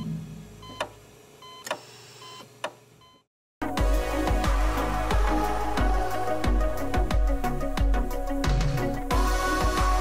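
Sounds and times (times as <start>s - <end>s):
loud music: 3.6s - 10.0s.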